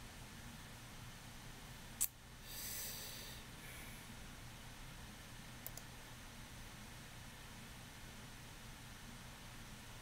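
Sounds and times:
faint low hum: 0:00.0 - 0:10.0
breath out through nose: 0:02.4 - 0:04.0
sharp click: 0:05.6 - 0:05.9.

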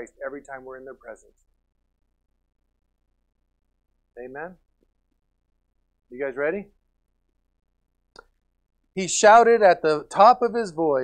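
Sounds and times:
man speaking: 0:00.0 - 0:01.3, 0:04.2 - 0:04.6, 0:06.1 - 0:06.8, 0:09.0 - 0:11.0.

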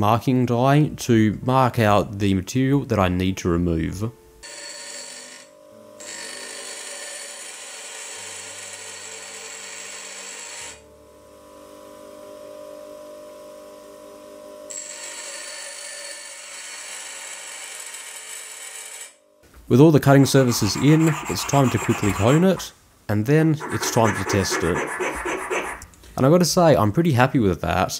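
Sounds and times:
bench grinder grinding steel: 0:04.4 - 0:10.8, 0:20.2 - 0:22.6, 0:23.6 - 0:25.9
grinder wheel spinning free: 0:23.6 - 0:25.9.

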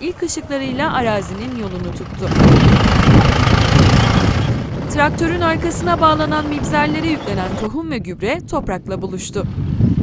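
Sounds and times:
tractor engine rumbling: 0:00.0 - 0:10.0.

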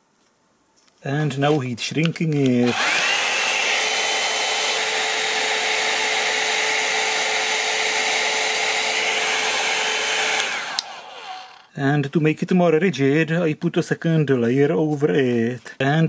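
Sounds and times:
hair dryer blowing: 0:02.6 - 0:11.7
hair dryer switch click: 0:10.3 - 0:11.0.

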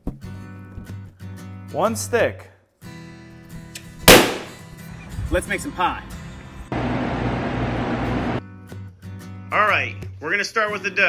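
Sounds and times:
balloon bursting: 0:04.1 - 0:04.6.

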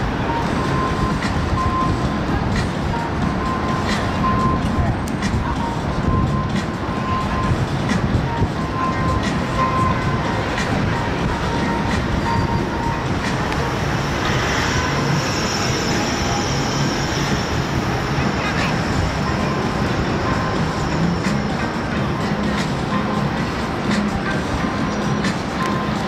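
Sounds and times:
faint voices: 0:00.0 - 0:26.0
music: 0:00.0 - 0:26.0
traffic rumble: 0:00.0 - 0:26.0.

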